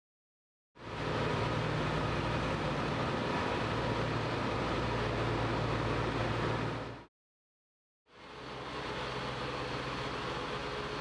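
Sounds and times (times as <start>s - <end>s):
train cars rumbling slowly: 0.8s - 7.0s.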